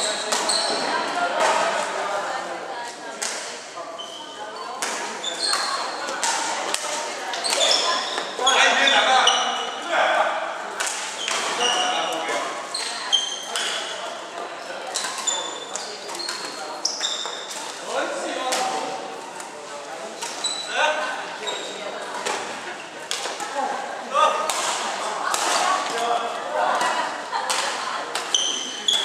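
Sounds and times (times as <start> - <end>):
shoe squeaks on wooden floor: 0.0 - 0.9, 3.9 - 6.2, 7.4 - 9.8, 11.2 - 14.0, 15.0 - 17.5, 20.2 - 21.8, 28.3 - 29.0.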